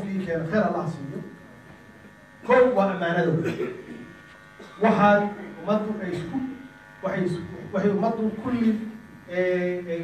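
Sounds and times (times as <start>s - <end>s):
steady electrical buzz: 0.0s - 10.0s
man speaking: 2.4s - 3.6s.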